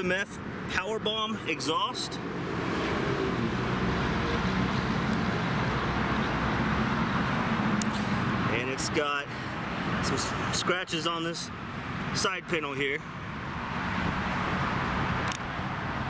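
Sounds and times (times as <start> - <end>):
road traffic: 0.0 - 16.0.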